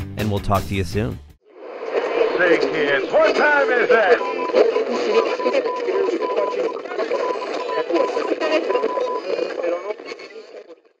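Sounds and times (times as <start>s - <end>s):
garbled radio voices: 1.7s - 11.0s.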